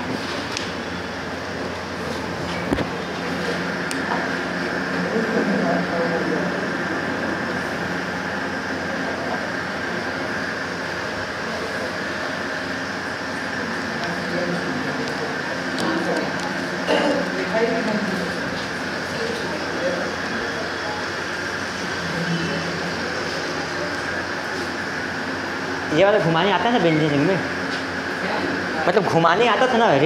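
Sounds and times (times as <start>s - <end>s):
background hum and hiss: 0.0s - 30.0s.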